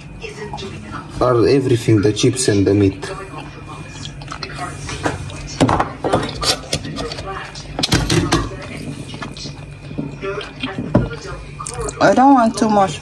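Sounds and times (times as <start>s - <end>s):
food handling clicks and rustles: 4.3s - 11.2s.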